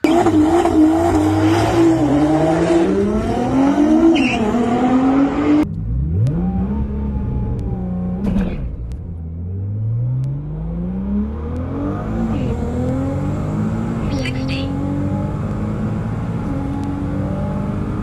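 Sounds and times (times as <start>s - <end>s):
car engine accelerating hard: 0.0s - 18.0s.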